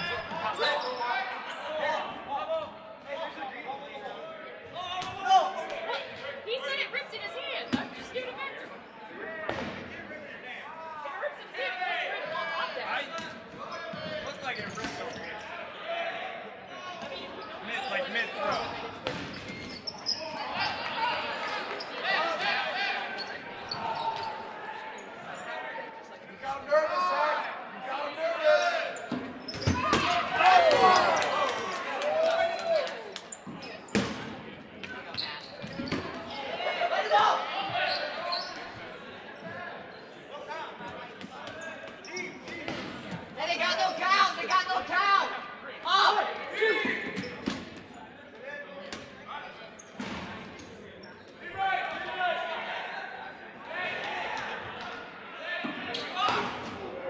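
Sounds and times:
balls smacking players and floor: 9.5 - 9.9, 19.0 - 19.7, 33.2 - 36.3, 40.9 - 43.3
players shouting: 29.6 - 33.2, 36.2 - 38.7.

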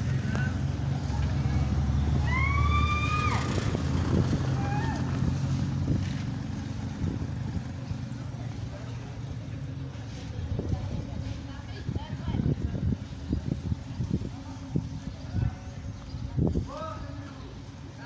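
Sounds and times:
vehicle engine idling: 0.0 - 18.0.

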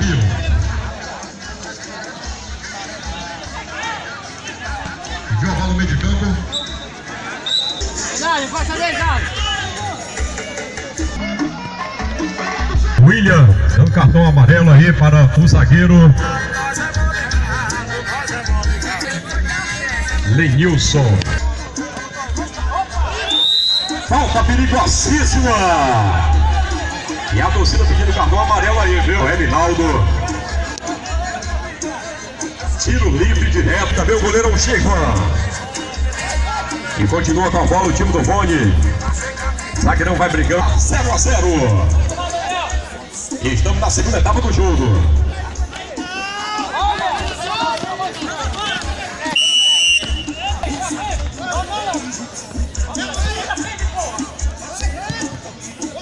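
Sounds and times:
background music: 0.0 - 56.0
crowd chatter: 0.0 - 56.0
referee's whistle: 6.4 - 8.0, 23.2 - 24.1, 49.2 - 50.8.

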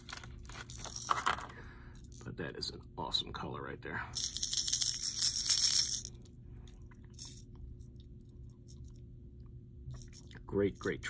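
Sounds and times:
faint steady hum: 0.0 - 11.0
fishing lure rattling: 4.2 - 6.3, 7.1 - 7.5.

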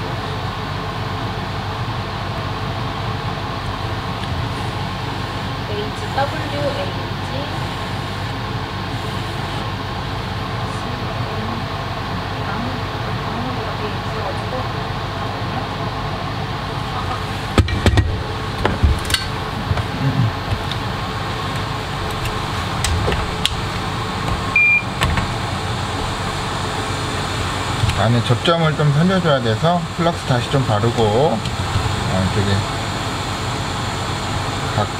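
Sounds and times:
fans whirring: 0.0 - 34.9
short high beep: 24.6 - 24.9.

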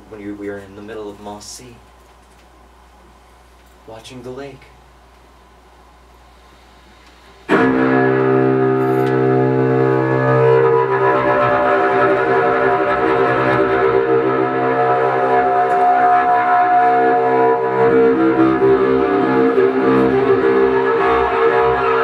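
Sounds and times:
cello bowed notes: 7.5 - 22.0.

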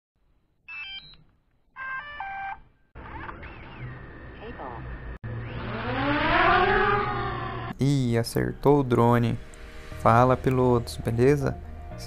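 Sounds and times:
noisy sliding tones: 3.0 - 7.8
rising swell: 5.1 - 7.8, 8.7 - 12.0.

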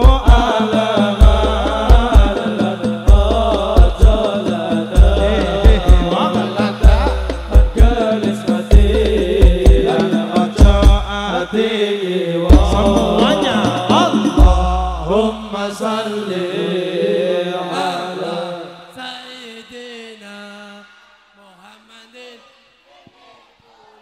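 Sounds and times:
deep drum booms: 0.0 - 11.3, 12.5 - 15.6
male voices chanting: 0.0 - 24.0.

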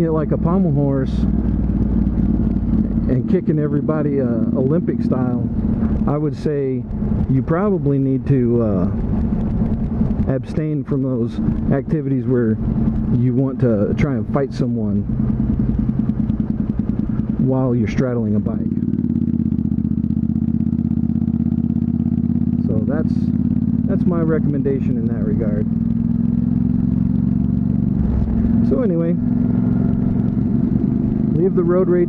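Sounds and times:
motorcycle engine humming: 0.0 - 32.0.

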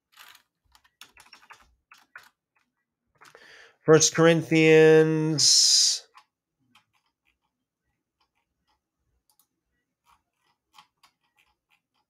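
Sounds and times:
faint typing on keyboard: 0.1 - 3.4, 6.0 - 12.0.

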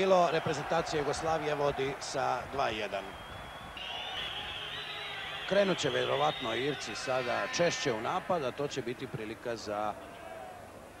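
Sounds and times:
broadcast recording hiss: 0.0 - 11.0.

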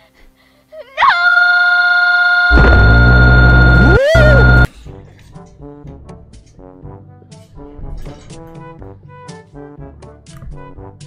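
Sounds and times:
harsh electronic tone: 1.2 - 4.7.

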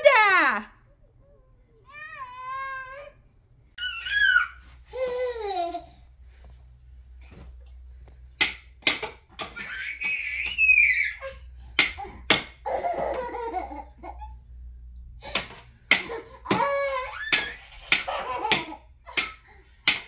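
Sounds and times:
toddler squealing and calling out: 3.8 - 4.7, 9.6 - 11.4.

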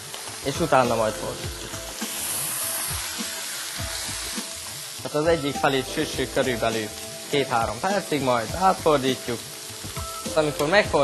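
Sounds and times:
chicken sizzling on a griddle: 0.0 - 11.0.

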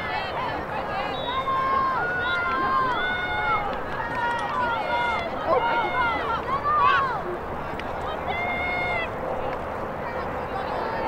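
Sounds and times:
girls calling and shouting: 0.0 - 11.0.

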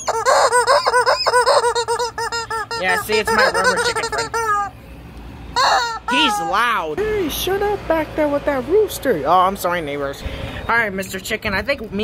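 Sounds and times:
rubber chicken squawking: 0.0 - 4.8, 5.5 - 6.8.

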